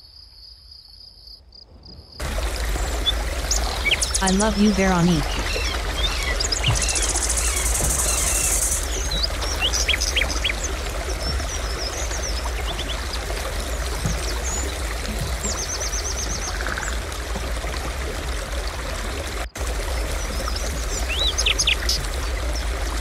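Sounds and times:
water rushing: 2.2s - 23.0s
bird chirps and calls: 3.5s - 10.5s.

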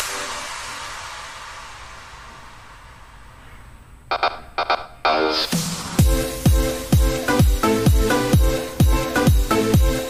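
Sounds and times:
electronic dance music: 0.0s - 3.0s, 4.1s - 10.0s
noise sweep: 0.0s - 7.6s.

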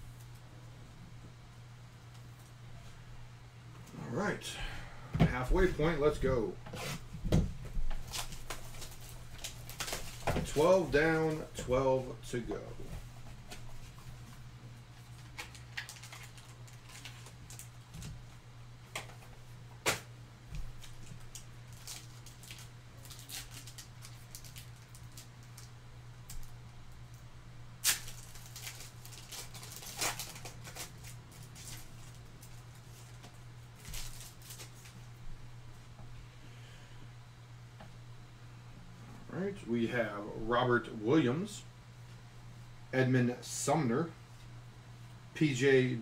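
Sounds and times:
steady low hum: 0.0s - 46.0s
foil wrapper tearing: 8.0s - 11.0s, 15.1s - 17.8s, 20.7s - 26.6s, 27.8s - 35.0s
cards crinkling and clicking: 8.0s - 11.4s, 15.0s - 18.2s, 18.9s - 25.7s, 27.8s - 35.0s.

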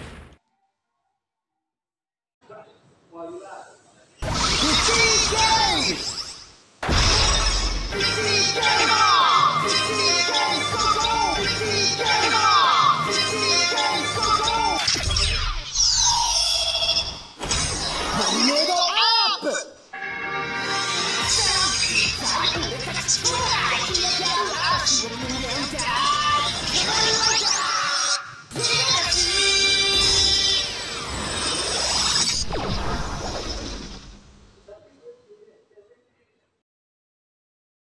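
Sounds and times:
music: 7.9s - 15.1s, 19.9s - 31.4s
electronic rising hissing sweep: 30.0s - 34.5s
electronic falling swoops: 30.8s - 34.5s.

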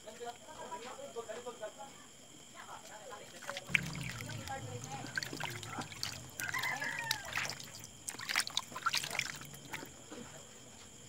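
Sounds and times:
water splashing and trickling: 3.2s - 10.1s.

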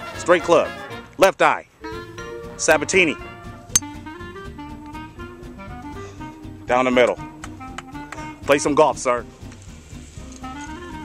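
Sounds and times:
jazz music with guitar and saxophone: 0.0s - 11.0s.

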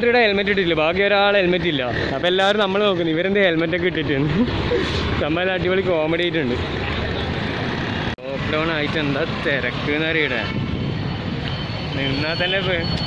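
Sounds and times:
street traffic noise: 0.0s - 13.0s.

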